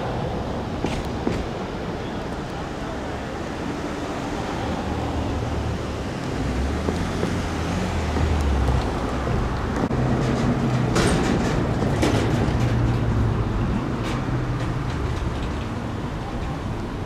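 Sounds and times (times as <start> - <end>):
diesel engine rumble: 0.0 - 17.0.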